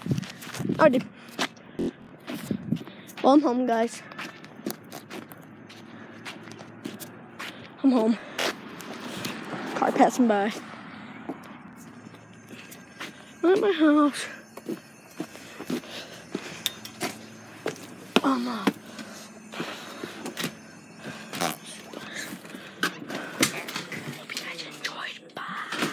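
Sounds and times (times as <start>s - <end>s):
soft footsteps: 2.2s - 9.8s.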